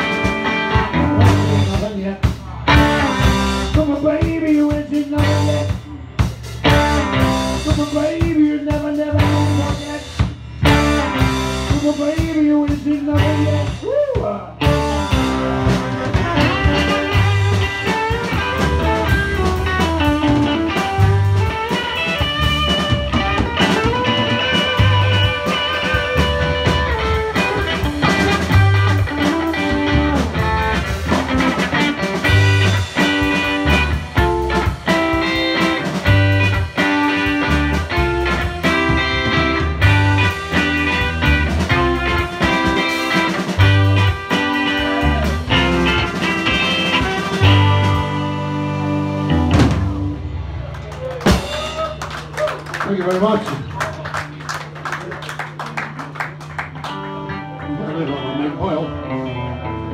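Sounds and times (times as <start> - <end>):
drum kit: 0.0 - 57.7
bass guitar: 0.0 - 59.9
electric guitars: 0.0 - 59.9
saxophone: 14.8 - 22.4, 43.6 - 49.2.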